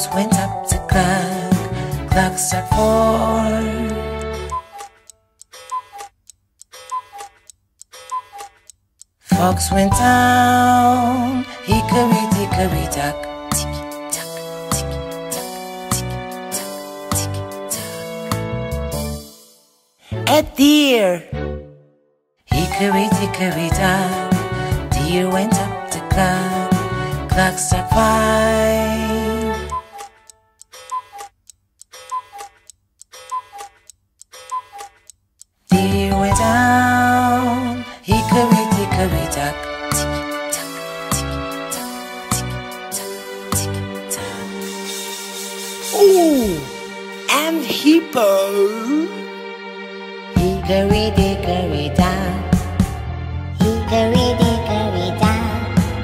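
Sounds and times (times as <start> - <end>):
faint clock ticks: 3.9 - 9.4, 29.7 - 35.9.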